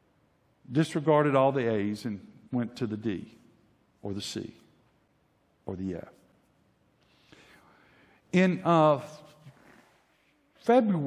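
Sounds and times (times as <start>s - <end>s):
faint breath: 7.0s - 8.3s.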